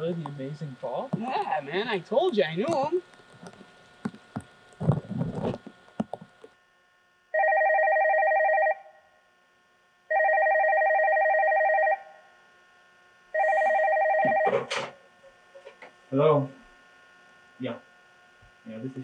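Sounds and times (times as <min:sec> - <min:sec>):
telephone ringing: 0:07.3 - 0:09.0, 0:10.1 - 0:12.2, 0:13.3 - 0:15.0.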